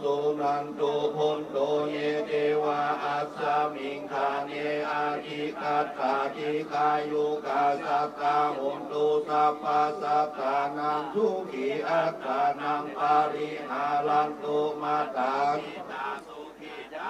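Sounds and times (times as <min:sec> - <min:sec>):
monks chanting together: 0:00.0 - 0:17.0.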